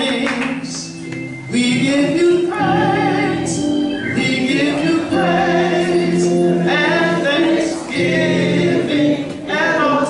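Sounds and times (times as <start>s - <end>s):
voices singing along: 1.5s - 10.0s.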